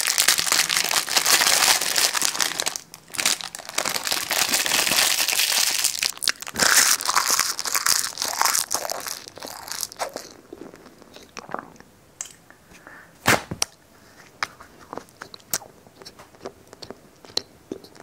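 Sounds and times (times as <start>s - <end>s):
plastic wrapping crinkling: 0.0s - 10.3s.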